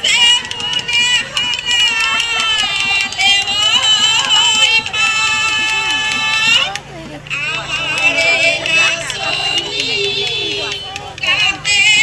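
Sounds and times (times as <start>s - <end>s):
women singing in wavering voices: 0.0s - 12.0s.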